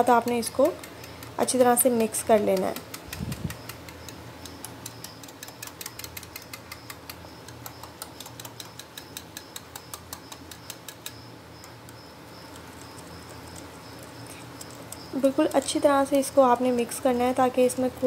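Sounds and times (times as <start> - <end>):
whisk clicking against ceramic bowl: 0.0 - 11.8, 12.5 - 16.9.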